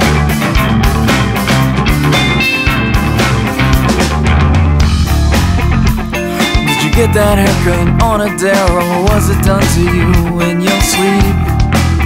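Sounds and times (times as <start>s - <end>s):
progressive rock band music: 0.0s - 12.0s.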